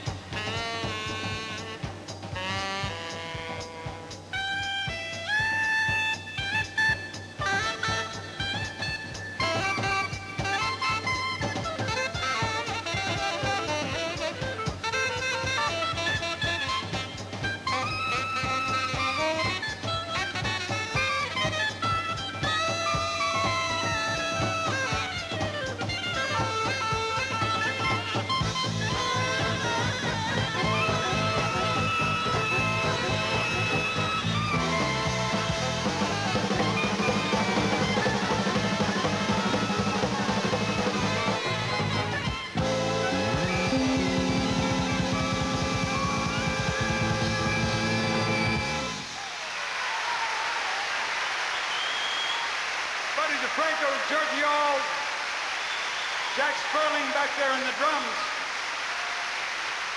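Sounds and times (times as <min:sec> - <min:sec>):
drum roll: 0:00.0 - 0:51.4
big band swing music: 0:00.0 - 0:59.9
audience applause: 0:48.9 - 0:59.9.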